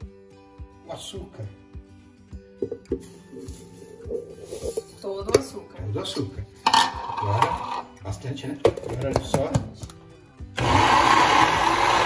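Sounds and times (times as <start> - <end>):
background music with a beat: 0.0 - 5.6.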